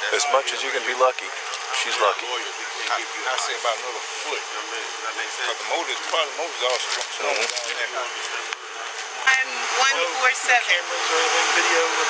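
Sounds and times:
people talking: 0.0s - 12.0s
steady outdoor hiss: 0.0s - 12.0s.

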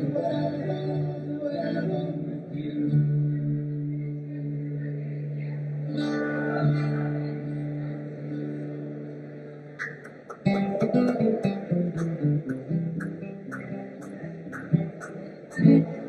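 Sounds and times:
rhythmic guitar strumming: 0.0s - 16.0s.

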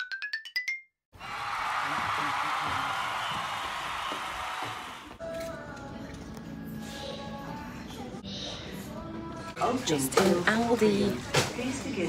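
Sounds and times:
faint background music: 5.1s - 12.0s.

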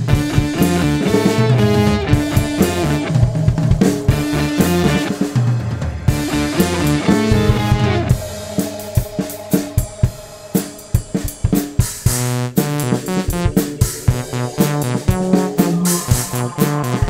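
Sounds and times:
drum kit playing: 0.0s - 17.0s
electric guitar: 0.0s - 17.0s.

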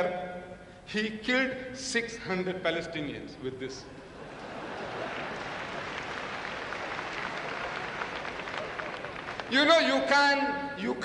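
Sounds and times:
audience applauding: 4.4s - 9.8s.

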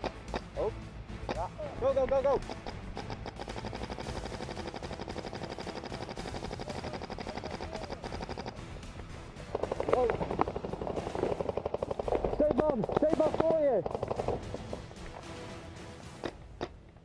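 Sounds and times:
paintball marker firing: 2.4s - 8.6s, 9.5s - 15.2s.

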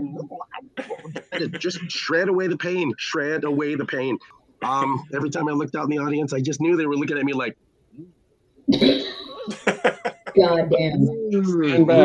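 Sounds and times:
man speaking a word: 0.0s - 5.9s, 9.8s - 10.4s
man coughing: 0.8s - 1.9s, 4.6s - 5.1s.

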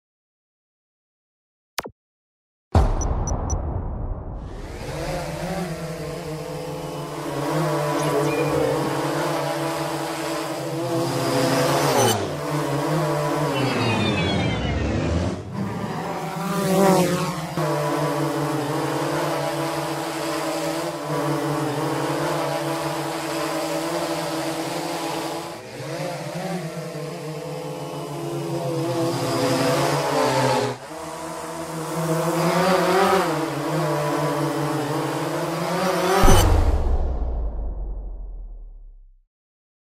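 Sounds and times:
drone propellers buzzing: 4.4s - 37.2s.

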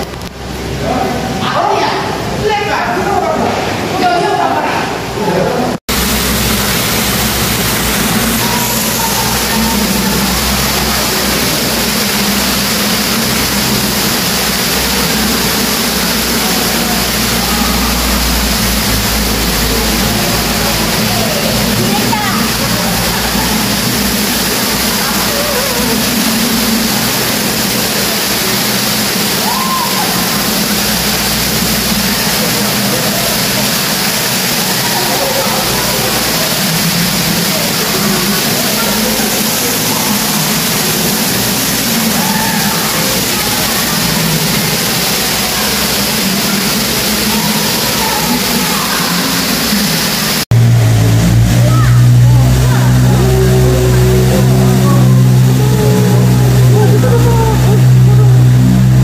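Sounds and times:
boat motor humming: 0.0s - 59.0s
fountain water splashing: 0.0s - 59.0s
faint voices: 7.0s - 59.0s.

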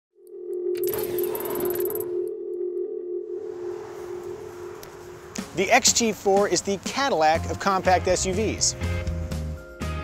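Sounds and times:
held electronic tone: 0.2s - 5.5s.

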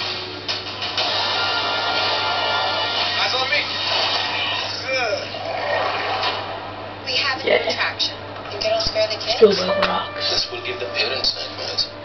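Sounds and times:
trailer music on small speakers: 9.6s - 12.0s.

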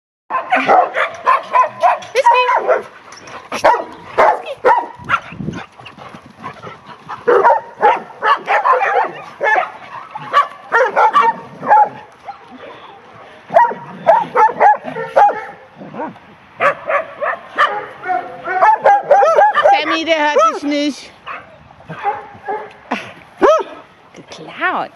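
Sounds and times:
dogs barking and yipping: 0.3s - 22.8s, 23.4s - 23.9s.

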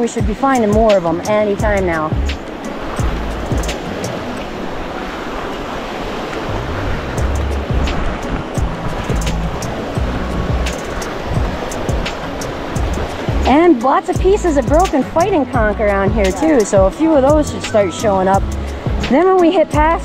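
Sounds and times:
background music with low bass: 0.0s - 4.6s, 6.4s - 20.0s
small waves washing over shallows: 0.0s - 20.0s.

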